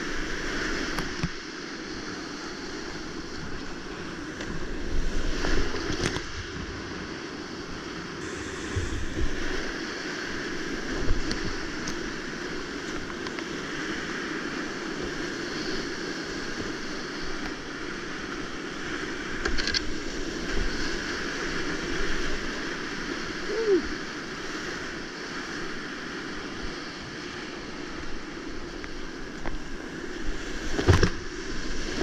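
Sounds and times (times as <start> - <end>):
kayak splashing through waves: 0.0 - 32.0.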